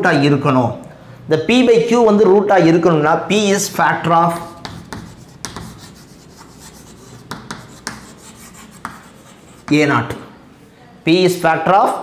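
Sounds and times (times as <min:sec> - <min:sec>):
chalk scratching on blackboard: 0:04.3 - 0:10.2
chalk tapping on board: 0:04.3 - 0:10.3.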